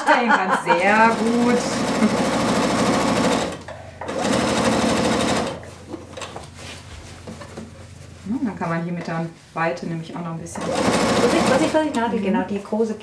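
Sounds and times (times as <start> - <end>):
sewing machine stitching: 0.9 - 5.6, 10.6 - 12.1.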